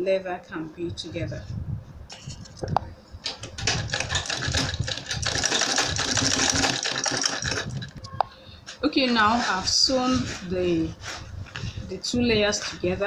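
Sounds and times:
sewing machine stitching: 0:03.4 - 0:07.9.

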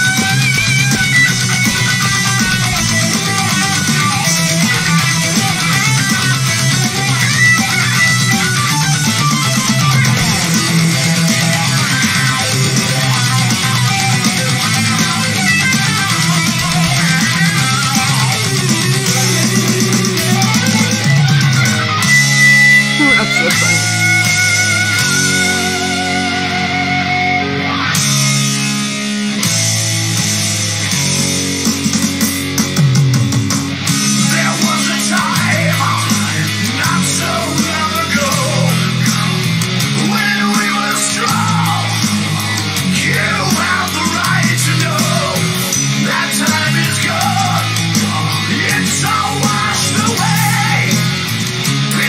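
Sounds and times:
heavy metal song: 0:00.0 - 0:52.0
wavering lead guitar: 0:00.0 - 0:52.0.

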